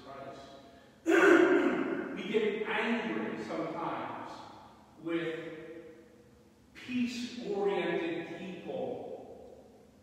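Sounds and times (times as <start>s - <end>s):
man preaching: 0.0s - 5.7s, 6.8s - 9.1s.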